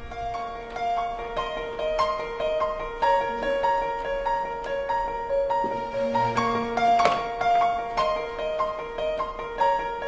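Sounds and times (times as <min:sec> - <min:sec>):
synthesized keyboard melody: 0:00.0 - 0:10.0.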